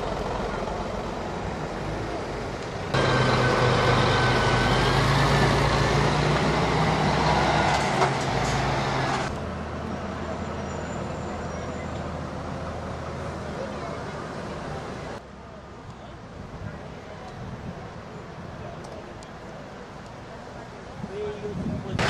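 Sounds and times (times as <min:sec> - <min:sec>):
truck diesel engine running: 0:00.0 - 0:09.3
background traffic noise: 0:00.0 - 0:22.0
road noise: 0:00.0 - 0:22.0.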